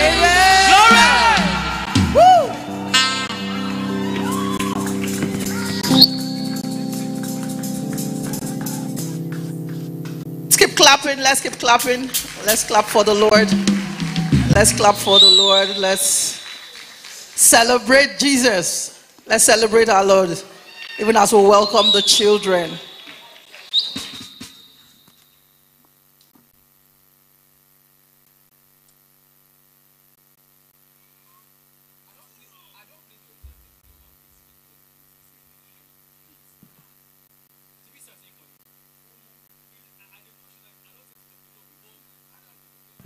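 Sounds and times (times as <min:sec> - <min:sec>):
high feedback whine: 0:00.0 - 0:17.0, 0:19.5 - 0:26.2
church band praise music: 0:00.0 - 0:18.9, 0:20.0 - 0:24.9.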